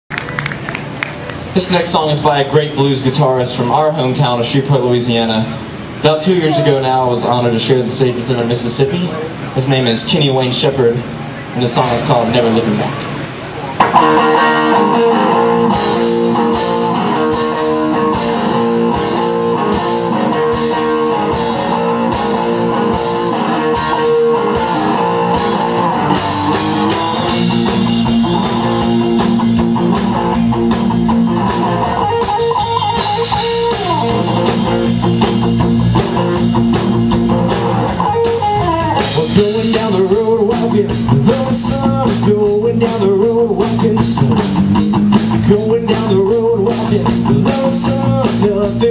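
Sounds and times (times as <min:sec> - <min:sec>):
bass and drums: 0:00.1 - 0:48.9
electric guitar: 0:11.0 - 0:48.9
lead vocal singing: 0:39.1 - 0:44.5, 0:45.4 - 0:48.9.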